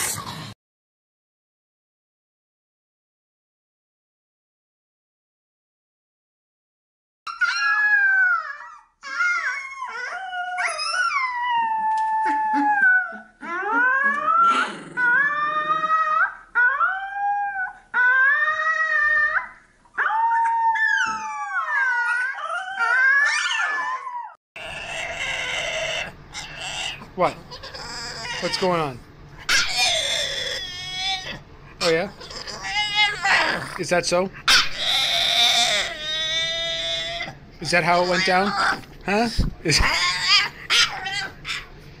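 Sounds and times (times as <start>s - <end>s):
puppy howling: 7.3s - 33.8s, 34.5s - 38.9s, 39.7s - 41.7s
noisy room sound: 7.3s - 42.0s.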